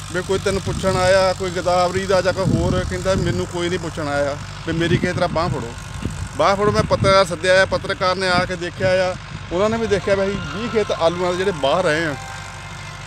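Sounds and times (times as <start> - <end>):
low engine drone: 0.0 - 13.0
man talking: 0.1 - 5.8, 6.4 - 12.4.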